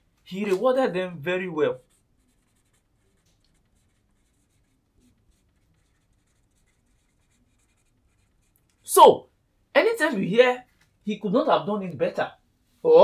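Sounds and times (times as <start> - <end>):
marker scratching on whiteboard: 1.7 - 8.9.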